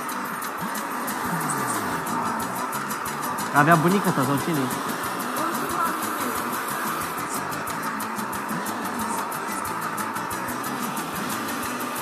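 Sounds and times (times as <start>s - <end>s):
background music: 0.0s - 12.0s
hair dryer running: 0.7s - 12.0s.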